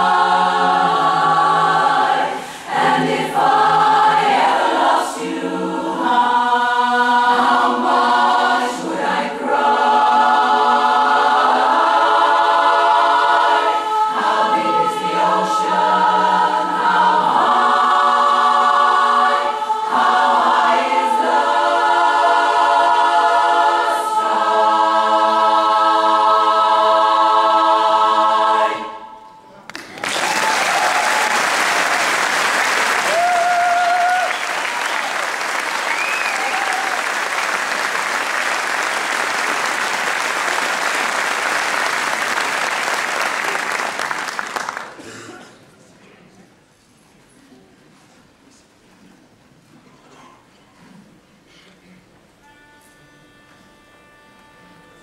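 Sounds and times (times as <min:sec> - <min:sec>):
women's chorus singing a cappella: 0:00.0 - 0:29.4
audience applauding: 0:29.7 - 0:45.0
audience cheering: 0:29.8 - 0:44.8.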